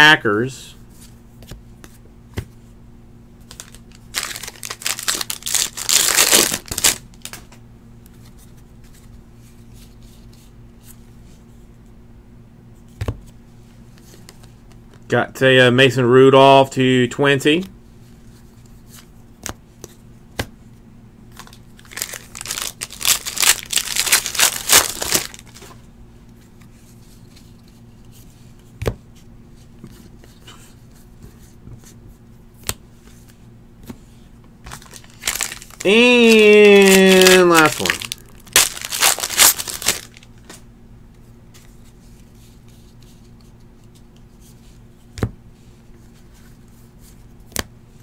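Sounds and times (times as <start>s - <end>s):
wrapper tearing and crinkling: 3.5s - 7.4s, 21.4s - 25.8s, 34.7s - 40.3s.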